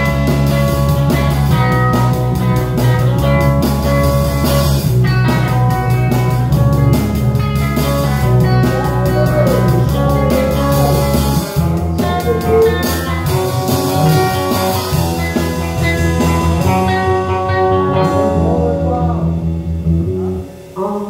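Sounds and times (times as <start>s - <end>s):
band playing blues-rock: 0.0s - 21.0s.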